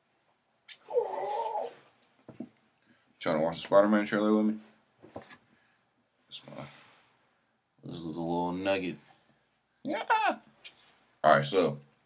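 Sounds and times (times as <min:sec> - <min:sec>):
dog whining: 0:00.8 - 0:01.8.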